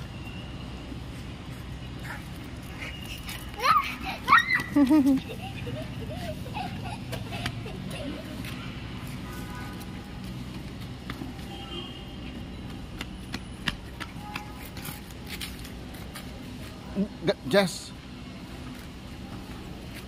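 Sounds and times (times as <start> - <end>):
light taps and scuffs: 8.3 - 11.6, 12.2 - 16.8.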